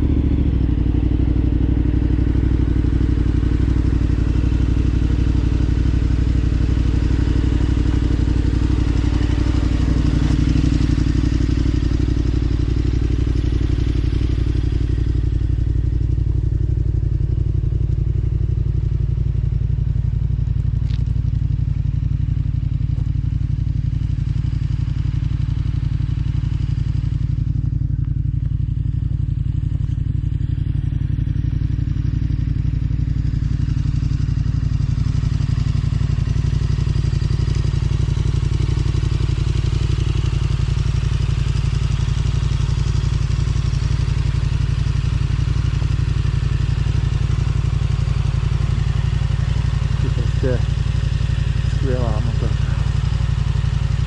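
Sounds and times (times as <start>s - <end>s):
motorcycle engine idling: 0.0s - 54.0s.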